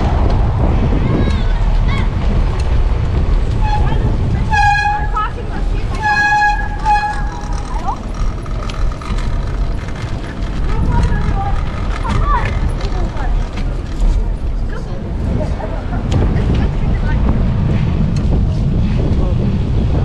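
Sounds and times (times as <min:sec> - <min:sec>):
wind and road noise: 0:00.0 - 0:20.0
vehicle horn honking: 0:03.6 - 0:07.4.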